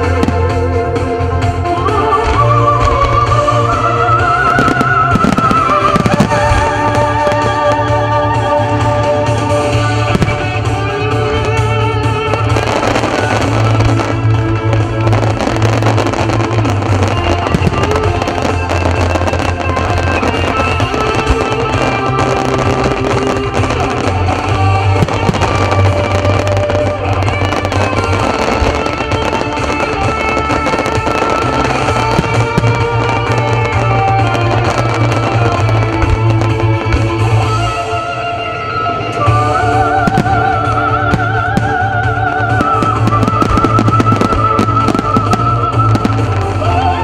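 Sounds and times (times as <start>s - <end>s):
fireworks crackling and popping: 0.0s - 47.0s
music over loudspeakers: 0.0s - 47.0s.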